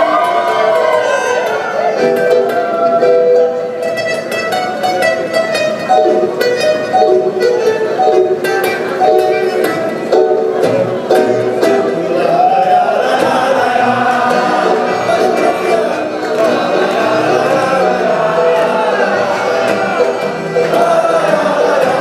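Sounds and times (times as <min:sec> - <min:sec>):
accordion playing chords: 0:00.0 - 0:22.0
acoustic guitars strummed: 0:00.0 - 0:22.0.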